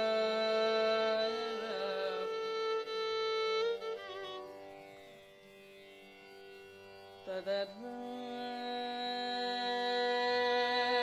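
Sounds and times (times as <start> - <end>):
woman singing: 0.0 - 2.9, 7.3 - 11.0
tanpura drone: 0.0 - 11.0.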